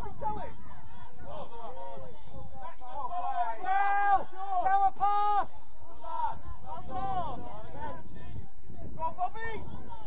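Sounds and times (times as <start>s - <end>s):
background chatter: 0.0s - 10.0s.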